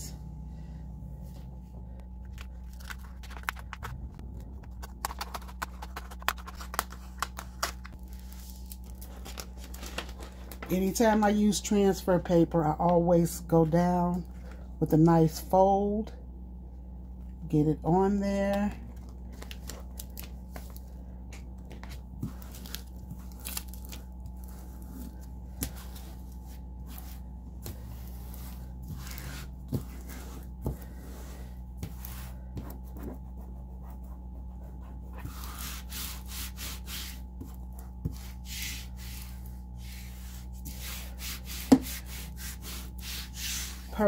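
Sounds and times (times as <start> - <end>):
low hum: 0.0 - 44.0
hands scuffing paper: 2.3 - 12.0, 21.7 - 44.0.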